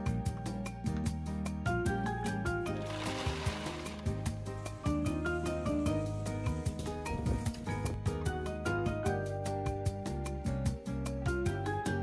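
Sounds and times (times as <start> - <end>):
background music with steady beat: 0.0 - 12.0
nuts pouring into plastic bag: 2.7 - 4.2.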